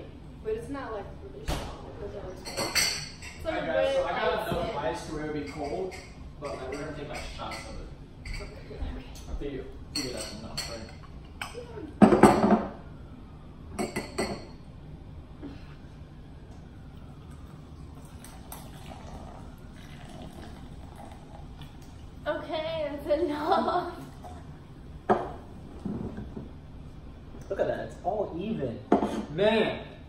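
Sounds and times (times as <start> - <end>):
drink poured over ice: 17.4 - 22.0
glasses knocking on table: 25.1 - 26.5.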